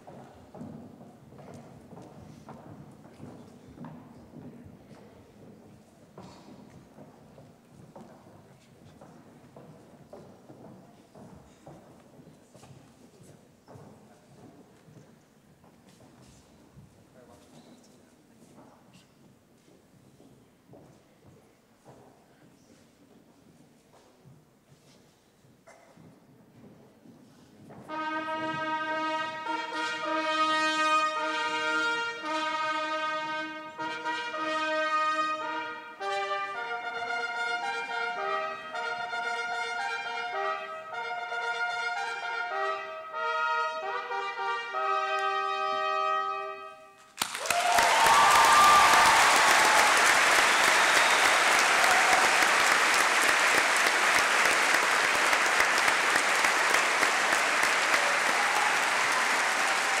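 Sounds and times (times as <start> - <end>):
brass ensemble playing chords: 27.9 - 47.0
audience applauding: 47.1 - 60.0.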